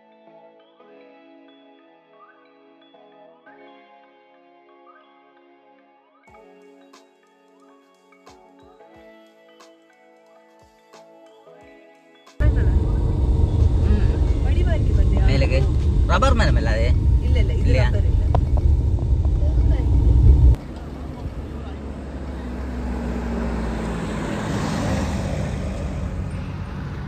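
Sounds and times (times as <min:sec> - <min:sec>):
car interior road rumble: 0:12.4 - 0:27.0
roadside street noise: 0:12.4 - 0:27.0
voices: 0:12.4 - 0:27.0.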